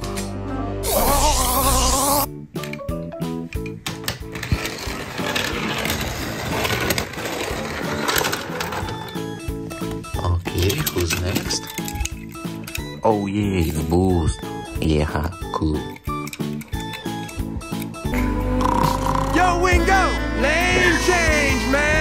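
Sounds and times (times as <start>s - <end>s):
background music: 0.0s - 22.0s
cartoon electric zap: 0.8s - 2.3s
toy car rattling on plastic: 4.0s - 9.3s, 10.4s - 12.9s.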